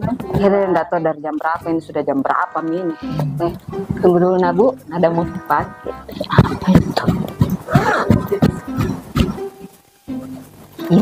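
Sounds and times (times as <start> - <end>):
background music: 0.0 - 11.0
woman laughing: 7.7 - 8.5.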